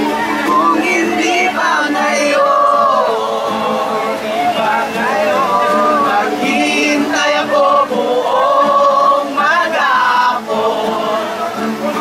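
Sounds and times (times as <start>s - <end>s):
group singing long held notes: 0.0s - 12.0s.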